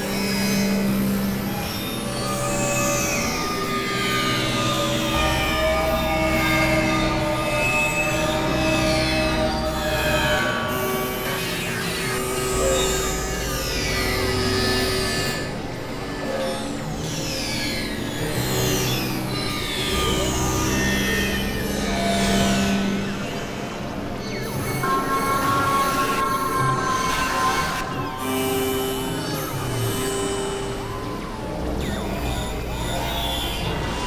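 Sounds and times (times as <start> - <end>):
experimental electronic music: 24.7 - 31.3.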